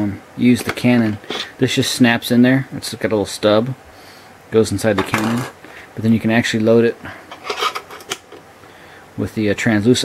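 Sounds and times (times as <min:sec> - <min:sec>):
light plastic clicks and scrapes: 0:07.3 - 0:08.4.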